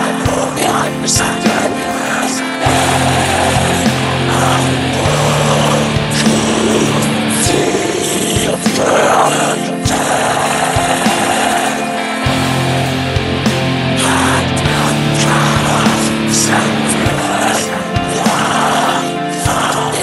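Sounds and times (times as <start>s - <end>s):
dense wall of noise: 0.0s - 20.0s
distorted electric guitar: 0.0s - 20.0s.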